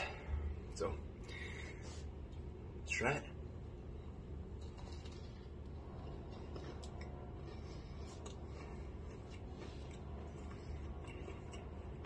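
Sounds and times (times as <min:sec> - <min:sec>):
steady low hum: 0:00.0 - 0:12.0
person chewing: 0:04.6 - 0:12.0.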